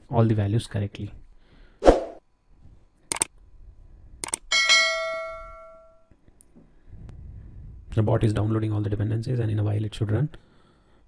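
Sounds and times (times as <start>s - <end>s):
quick clicks: 3.1s - 3.3s, 4.2s - 4.5s
bell chime: 4.5s - 6.0s.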